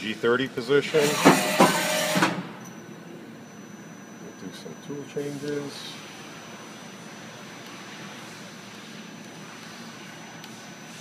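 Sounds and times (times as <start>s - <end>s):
low machine running hum: 0.0s - 11.0s.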